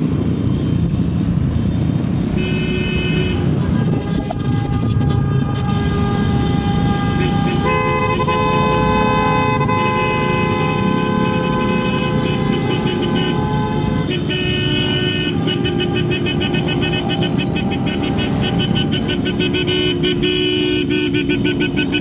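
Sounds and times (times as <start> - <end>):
motorcycle engines running: 0.0 - 22.0
motorcycle horns honking: 2.3 - 22.0.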